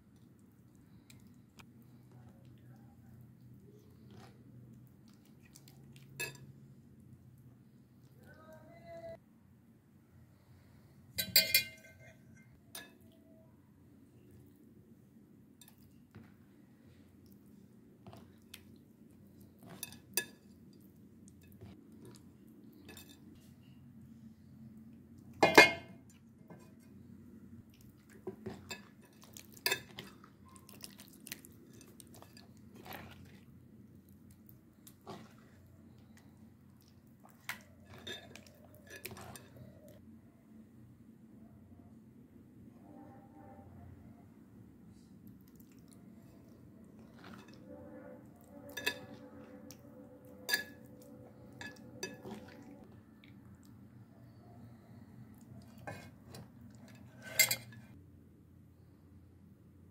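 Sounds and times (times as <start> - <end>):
clinks against steel bowl and plate: 11.2 - 13.1, 25.4 - 26.7, 56.9 - 57.9.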